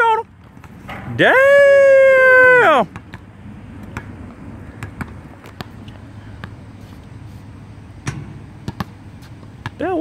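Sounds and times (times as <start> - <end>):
low outdoor rumble: 0.0 - 10.0
basketball bouncing on hard court: 4.7 - 5.8, 8.0 - 10.0.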